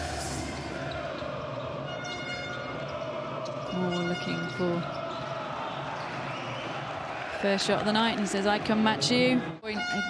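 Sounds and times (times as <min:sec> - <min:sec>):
crowd noise in large hall: 0:00.0 - 0:10.0.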